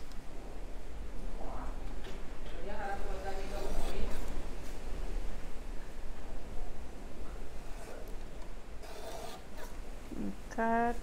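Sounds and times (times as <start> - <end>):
paper cutter slicing paper: 8.8 - 9.7.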